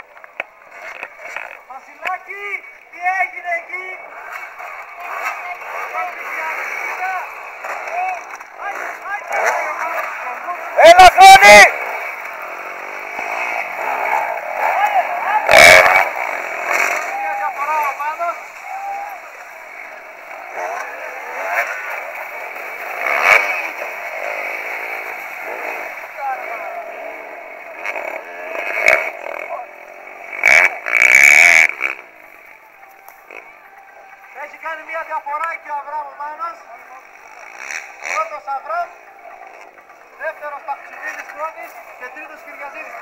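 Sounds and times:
dirt bike engine revving: 0.2s - 43.0s.

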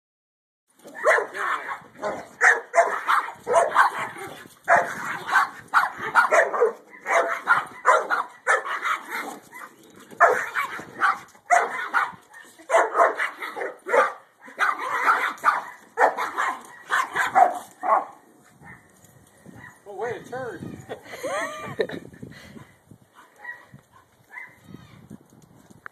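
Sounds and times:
dogs barking: 0.8s - 18.9s, 19.5s - 19.9s, 23.2s - 24.6s.

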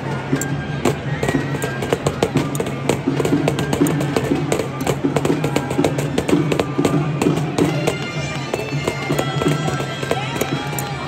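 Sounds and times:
folk dance tune: 0.0s - 11.0s.

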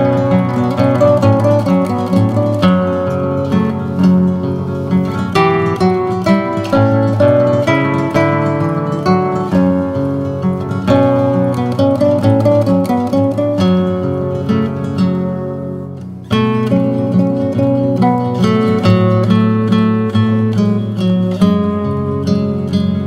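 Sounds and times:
acoustic guitar plucked notes: 0.0s - 23.0s.

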